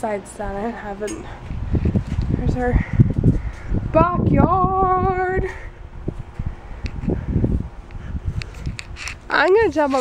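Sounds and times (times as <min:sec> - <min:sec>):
wind on microphone: 0:01.2 - 0:10.0.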